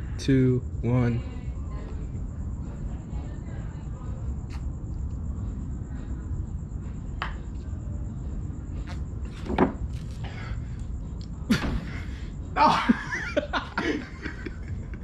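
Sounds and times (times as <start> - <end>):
thin high whine: 0.0 - 14.9
steady low rumble: 0.0 - 15.0.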